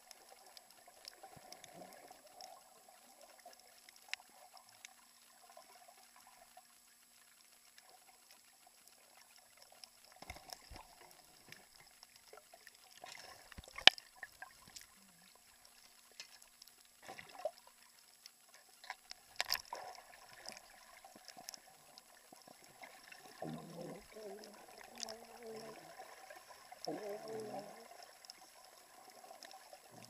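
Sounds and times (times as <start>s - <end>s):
water moving underwater: 0.0s - 30.0s.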